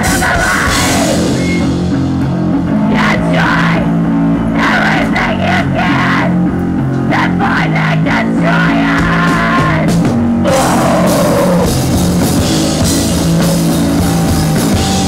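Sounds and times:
drum kit and cymbal hits: 0.0s - 3.7s, 9.0s - 15.0s
bass guitar: 0.0s - 15.0s
distorted electric guitar: 0.0s - 15.0s.

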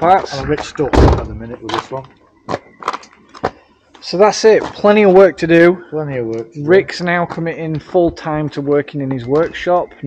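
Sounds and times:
faint background noise: 0.0s - 10.0s.

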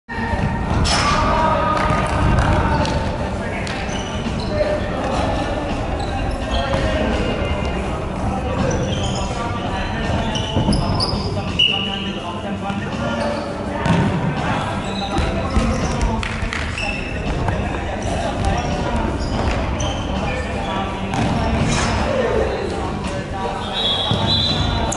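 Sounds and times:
sneakers squeaking on floor: 1.9s - 22.3s, 23.4s - 24.9s.

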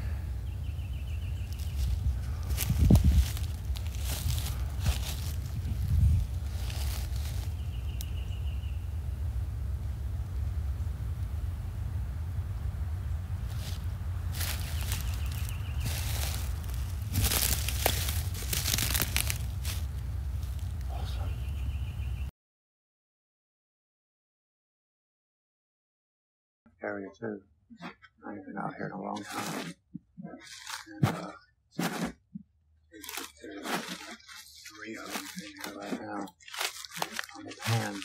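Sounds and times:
steady low rumble: 0.0s - 22.3s
footsteps crunching dry leaves: 1.3s - 8.1s, 13.4s - 21.0s, 29.2s - 29.7s, 30.4s - 32.1s, 33.0s - 38.0s.

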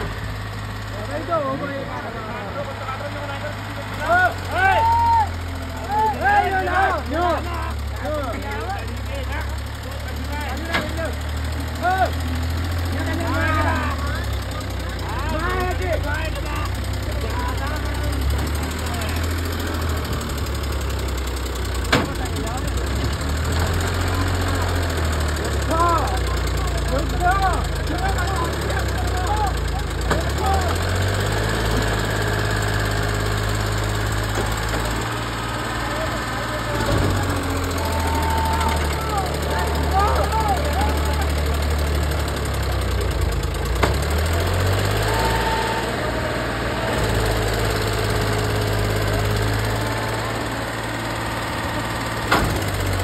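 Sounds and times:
tractor diesel engine under load: 0.0s - 53.0s.

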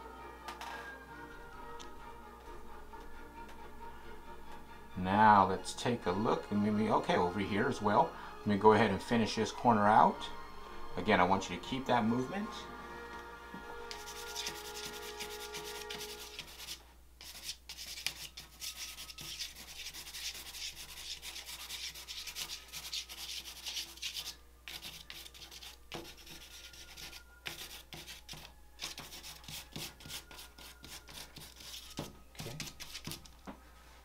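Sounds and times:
charcoal scraping on paper: 13.9s - 33.4s.

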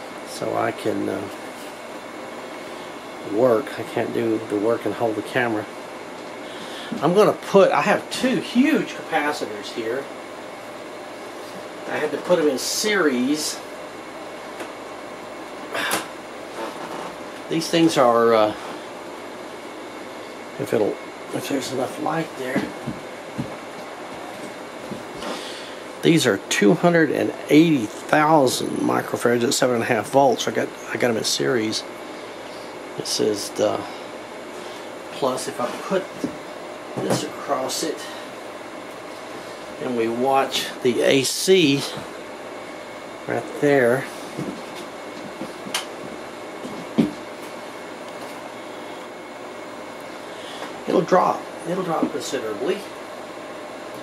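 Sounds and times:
room noise: 0.0s - 54.0s
workshop background noise: 13.4s - 30.6s, 31.3s - 54.0s.

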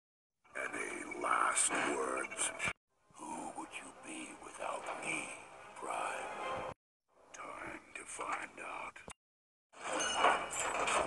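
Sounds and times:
person whispering: 0.6s - 6.3s, 7.3s - 9.2s.

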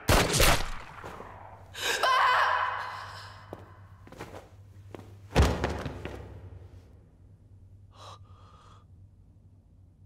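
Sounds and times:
person gasping cry: 1.8s - 3.6s.

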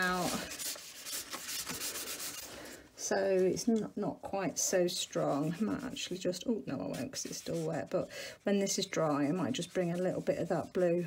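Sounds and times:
paper towel scuffing on paper: 0.0s - 2.5s, 4.8s - 11.0s.

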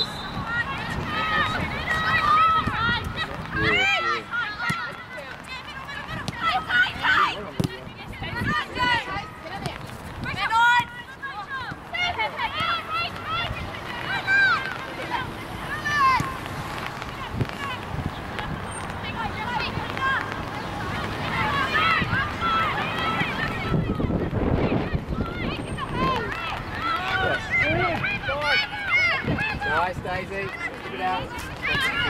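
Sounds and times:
women shouting and calling: 0.1s - 16.4s, 17.0s - 32.0s.

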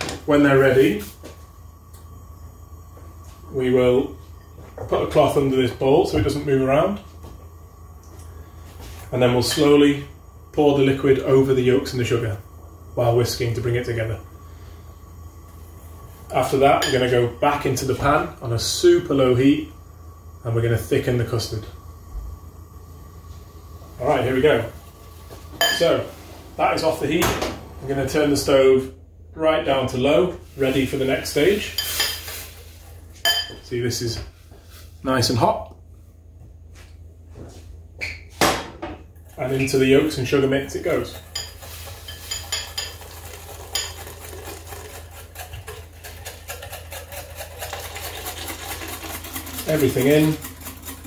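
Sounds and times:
faint high whine: 0.0s - 34.4s
low kitchen hum: 0.0s - 51.0s
whisk clinking in glass bowl: 41.1s - 51.0s.

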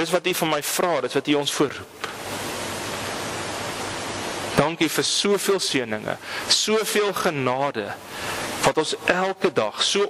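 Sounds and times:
steady static hiss: 0.0s - 10.0s.

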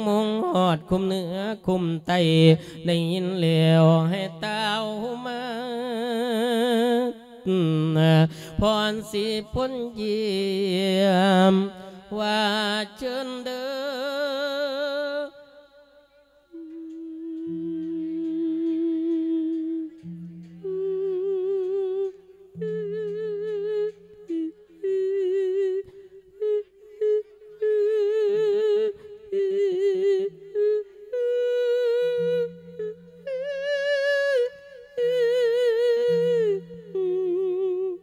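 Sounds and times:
monk singing with heavy vibrato: 0.0s - 38.0s
singer breathing: 2.6s - 2.8s, 8.3s - 8.6s.

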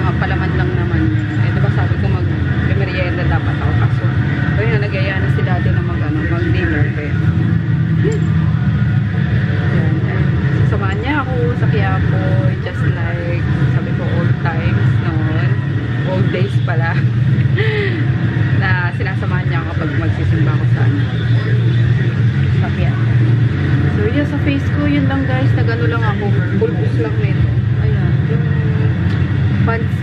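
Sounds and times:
woman talking: 0.0s - 7.4s, 8.0s - 8.4s, 9.6s - 21.6s, 22.4s - 30.0s
steady low hum: 0.0s - 30.0s.

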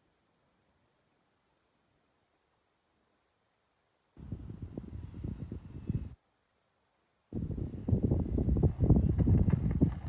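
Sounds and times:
wind buffeting microphone: 4.2s - 6.2s, 7.3s - 10.0s.

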